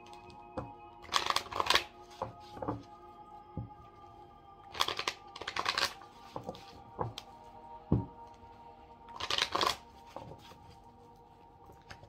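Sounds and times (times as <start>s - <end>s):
cards riffle-shuffled: 1.0s - 2.9s, 4.7s - 7.3s, 9.1s - 10.8s.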